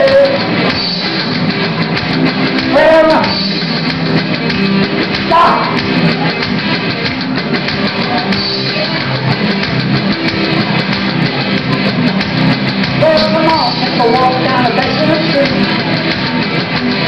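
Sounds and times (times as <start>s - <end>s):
bending guitar melody line: 0.0s - 17.0s
live blues-rock band: 0.0s - 17.0s.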